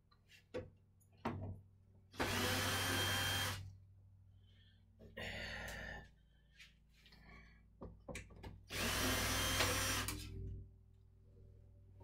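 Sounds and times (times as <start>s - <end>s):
cordless drill spinning: 2.2s - 3.6s, 8.7s - 10.2s.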